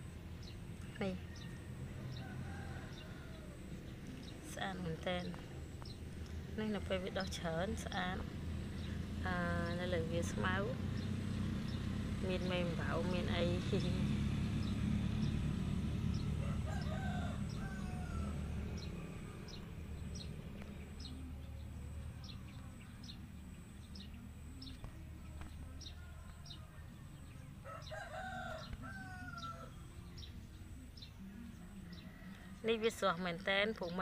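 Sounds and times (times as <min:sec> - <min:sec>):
rooster crowing: 0:01.4 - 0:03.8, 0:16.1 - 0:20.2, 0:25.8 - 0:29.9.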